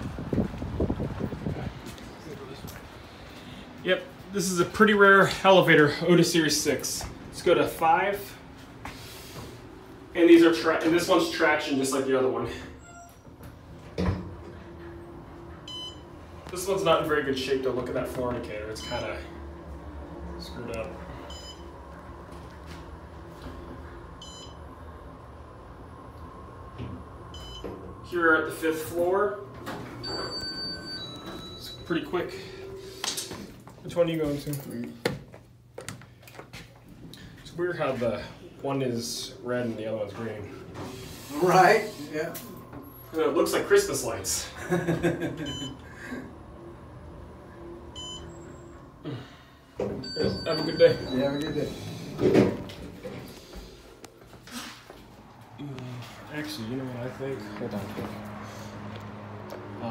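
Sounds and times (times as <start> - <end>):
elevator car humming: 8.3 - 33.7, 38.8 - 53.9
short electronic beeps: 21.3 - 21.7, 30.0 - 31.9, 45.5 - 45.8, 48.0 - 48.6, 50.0 - 51.9.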